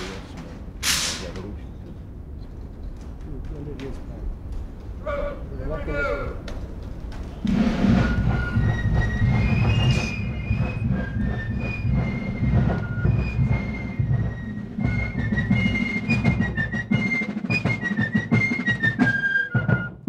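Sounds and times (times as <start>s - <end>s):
continuous drumming: 6.3s - 20.0s.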